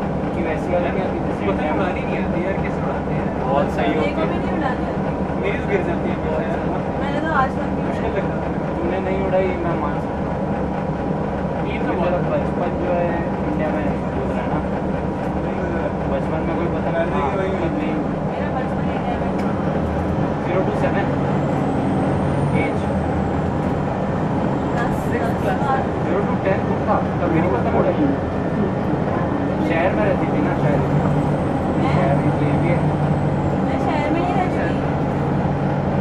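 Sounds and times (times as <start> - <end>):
bus engine running: 0.0 - 36.0
people talking: 0.3 - 10.1, 11.6 - 14.7, 15.4 - 19.7, 20.4 - 21.3, 22.1 - 23.0, 24.7 - 34.9.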